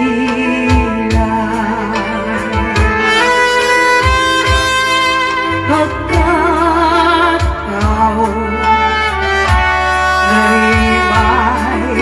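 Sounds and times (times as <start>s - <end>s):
low drum beats: 0.0s - 8.8s
held lead melody: 0.0s - 12.0s.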